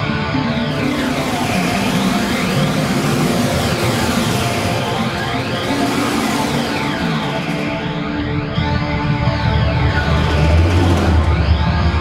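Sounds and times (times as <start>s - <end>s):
heavy metal band playing: 0.4s - 12.0s.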